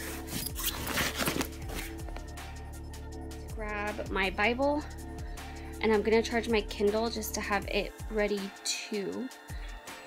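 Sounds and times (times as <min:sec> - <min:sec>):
book rubbing and scraping: 0:00.0 - 0:02.2.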